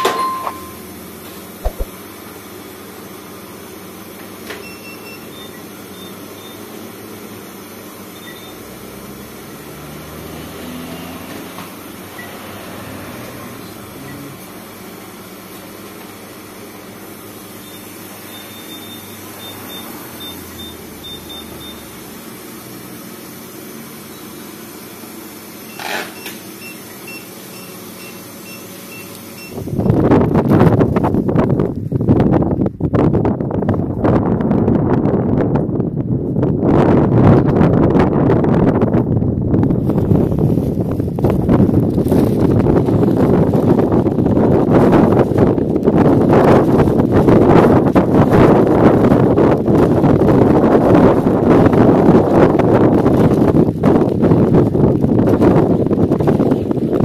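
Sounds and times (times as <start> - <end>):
high electronic key beeps: 17.6 - 21.9, 26.2 - 29.6
wind buffeting microphone: 29.5 - 57.0.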